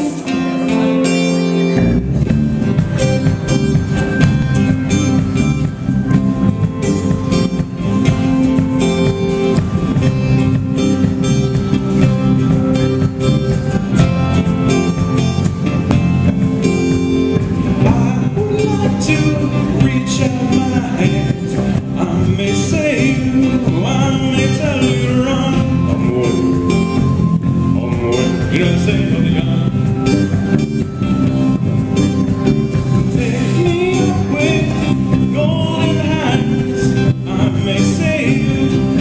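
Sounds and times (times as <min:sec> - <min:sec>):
drum kit beat: 0:00.0 - 0:39.0
electric bass: 0:00.0 - 0:39.0
strummed acoustic guitars: 0:00.0 - 0:39.0
person singing: 0:17.8 - 0:26.9, 0:27.7 - 0:29.8, 0:33.1 - 0:39.0.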